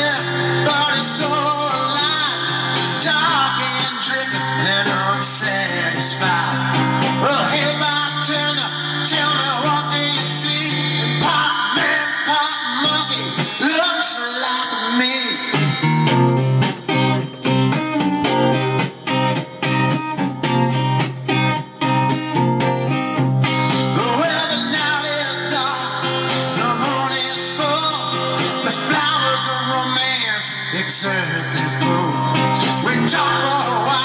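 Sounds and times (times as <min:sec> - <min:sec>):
man singing: 0:00.0 - 0:16.1, 0:23.6 - 0:34.0
acoustic guitar strumming chords: 0:00.0 - 0:34.0.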